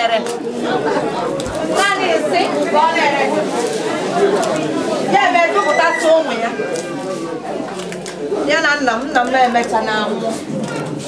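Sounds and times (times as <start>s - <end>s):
crowd chatter: 0.0s - 11.0s
woman's voice: 5.1s - 6.6s.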